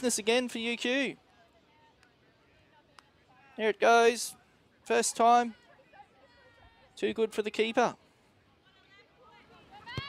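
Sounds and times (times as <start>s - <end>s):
distant voices of players: 0.0s - 10.0s.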